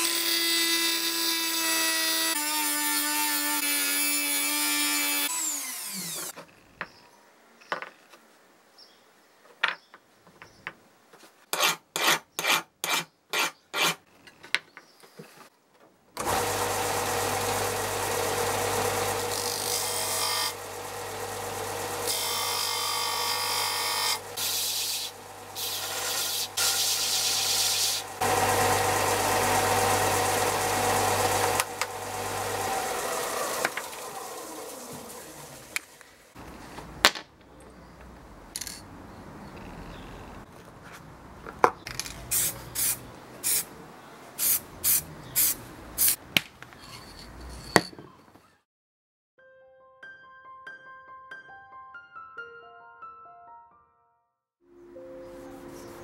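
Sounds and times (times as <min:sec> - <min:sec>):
rotary tool running: 0:16.2 - 0:22.8, 0:23.4 - 0:35.8
belt and disc sander running: 0:16.2 - 0:35.9.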